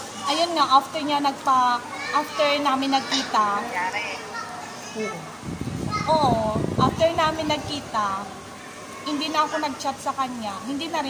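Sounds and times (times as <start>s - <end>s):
low rumbling noise: 5.4s - 8.4s.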